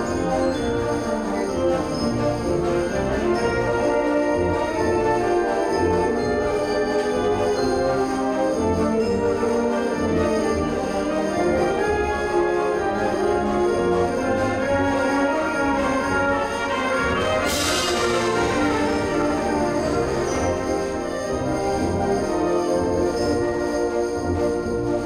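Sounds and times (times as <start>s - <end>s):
symphonic band playing chords: 0.0s - 25.0s
cymbal crash: 17.4s - 19.2s.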